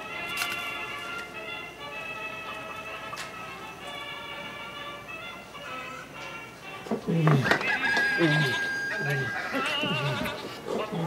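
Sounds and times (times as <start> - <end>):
rooster crowing: 7.5 - 10.5.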